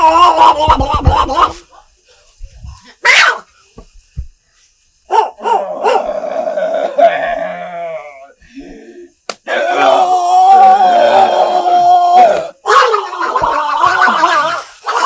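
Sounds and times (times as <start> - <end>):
person crying out: 0.0 - 1.6, 9.6 - 15.0
soft thumps: 3.7 - 4.4
wavering wail: 9.5 - 15.0.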